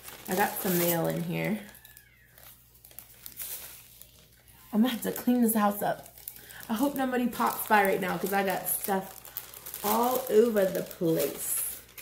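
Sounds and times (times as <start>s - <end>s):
paper bag rustling: 0.0s - 12.0s.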